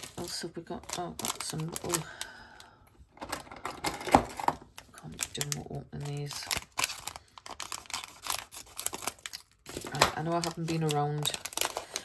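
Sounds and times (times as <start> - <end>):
plastic crinkling clicks: 0.0 - 2.1, 3.2 - 12.0
plastic packet rustling: 0.0 - 12.0.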